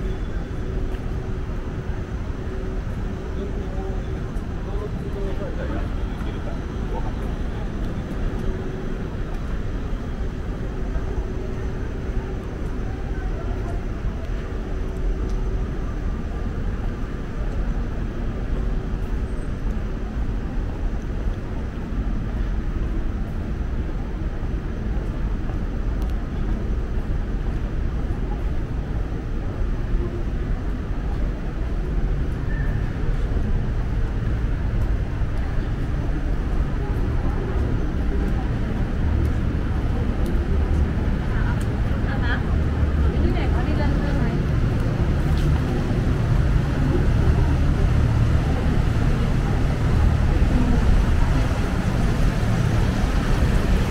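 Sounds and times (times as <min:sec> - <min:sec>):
city traffic rumble: 0:00.0 - 0:53.9
indistinct voices of passers-by: 0:00.0 - 0:53.9.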